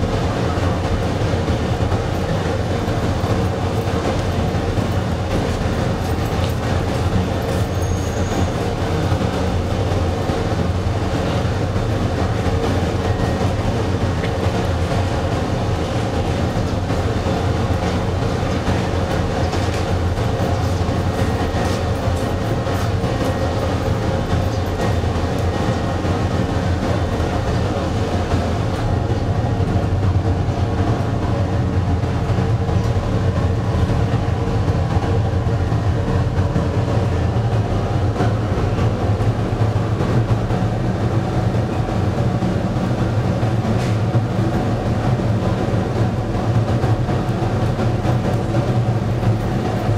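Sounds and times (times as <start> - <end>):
burner and blower hum: 0.0 - 49.9.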